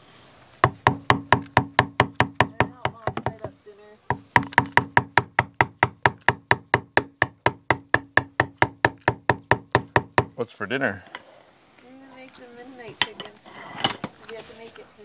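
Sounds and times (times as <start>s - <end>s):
hammer tapping a chisel: 0.6s - 10.4s.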